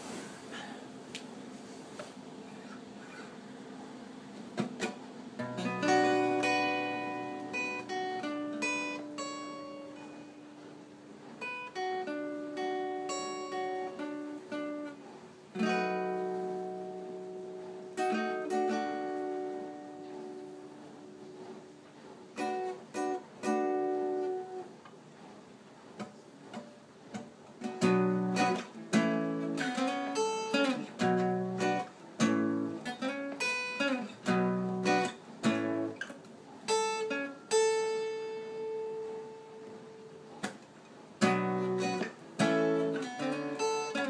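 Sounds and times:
acoustic guitar chords: 2.5 - 24.9, 26.0 - 44.0.

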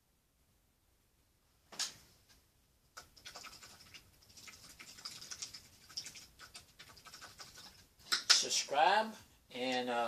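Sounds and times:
scratching and light clicking: 2.9 - 8.5.

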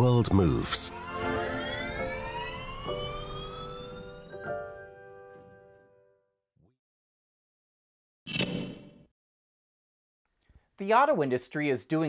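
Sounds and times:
electric motor whining: 0.9 - 4.4.

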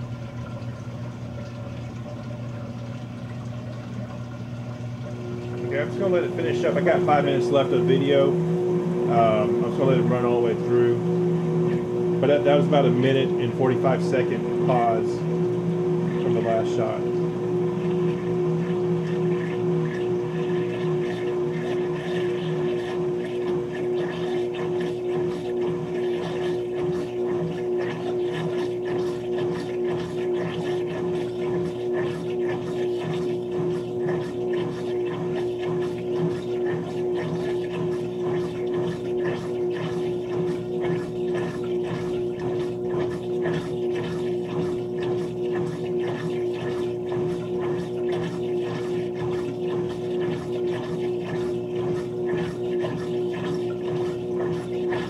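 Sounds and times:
washing machine spinning: 0.0 - 55.0.

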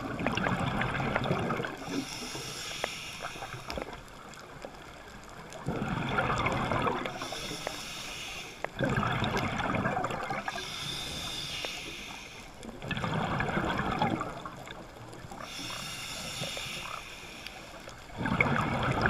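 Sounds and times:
exhaled bubbles rumbling: 0.0 - 2.1, 3.7 - 7.4, 8.7 - 11.3, 12.6 - 16.5, 17.9 - 19.0
regulator hissing inhale: 1.8 - 4.0, 7.1 - 8.8, 10.4 - 12.7, 15.3 - 18.1.

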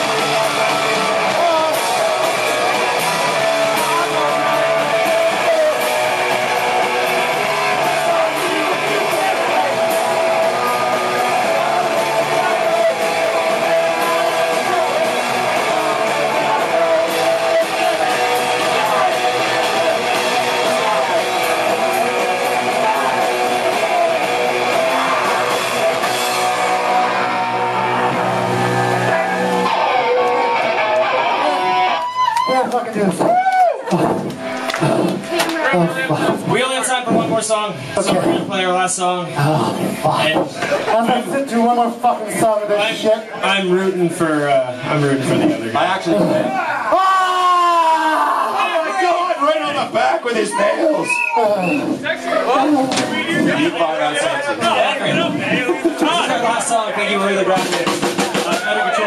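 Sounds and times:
electric guitars strummed: 0.0 - 32.3
drums: 0.0 - 59.0.

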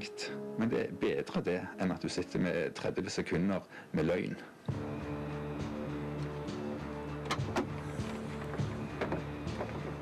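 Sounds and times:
background music: 0.0 - 10.0
car hatch clicks and knocks: 7.3 - 7.9.

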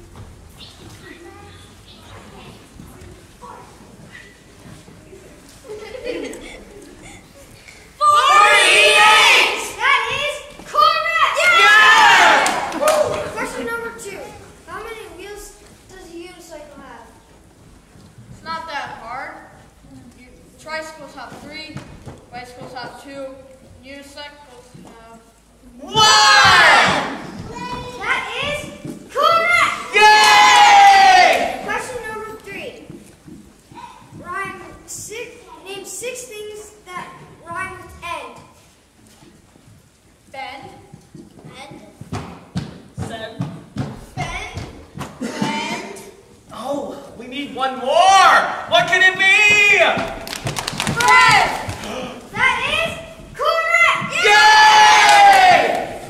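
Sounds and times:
children shouting together: 8.0 - 13.3, 25.9 - 27.2, 29.2 - 31.7, 53.4 - 56.0.

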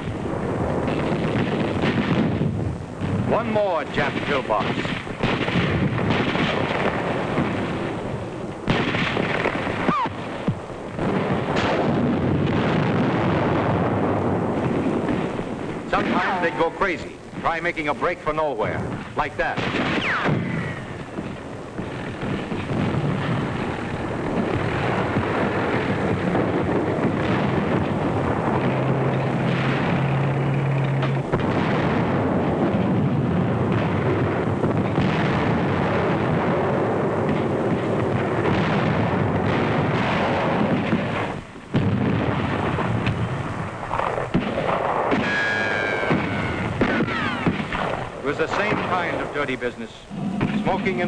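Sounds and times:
explosions: 0.0 - 51.0
gunfire: 0.0 - 51.0
loud blasts: 0.0 - 51.0
low steady drone: 20.5 - 33.7, 50.0 - 51.0.

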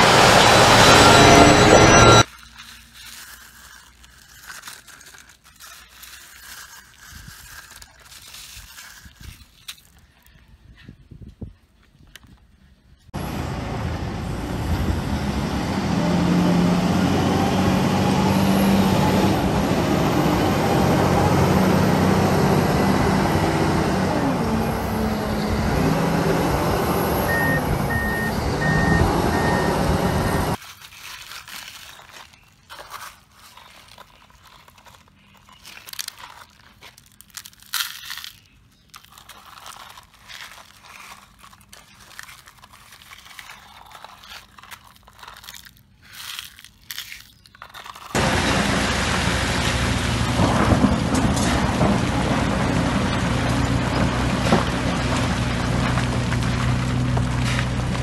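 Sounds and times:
backup alarm beeping: 0.0 - 2.2, 27.1 - 30.6
diesel engine revving: 0.0 - 2.3, 13.2 - 30.6, 48.2 - 58.0
gravel crunching under toy trucks: 0.0 - 58.0.

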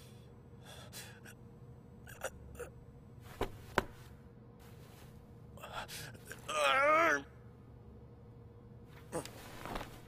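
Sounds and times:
man breathing tensely: 0.0 - 1.4.

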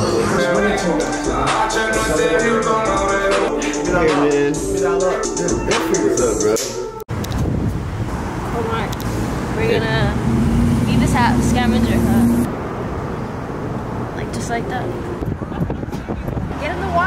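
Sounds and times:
cars passing on street: 7.1 - 17.0
people's voices: 8.5 - 12.5, 14.2 - 17.0.

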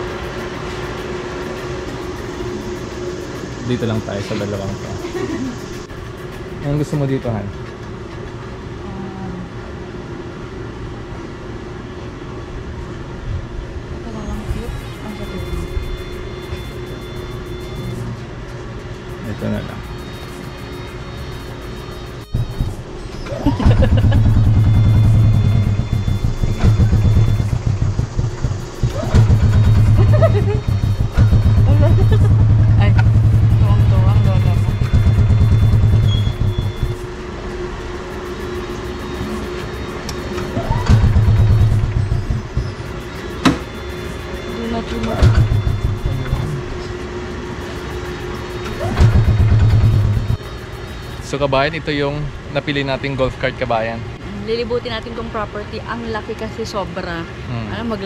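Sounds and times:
small vehicle engine running: 0.0 - 7.4, 19.1 - 51.7.

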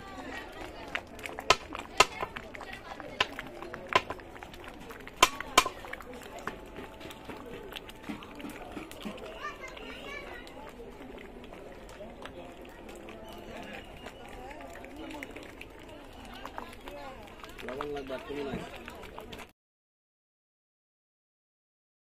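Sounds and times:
people talking outdoors: 0.0 - 19.5.

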